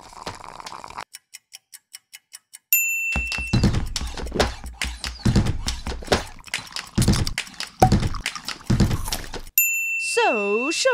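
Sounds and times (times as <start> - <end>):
kitchen timer ticking: 1.0 - 8.7
percussive backing track: 3.2 - 9.4.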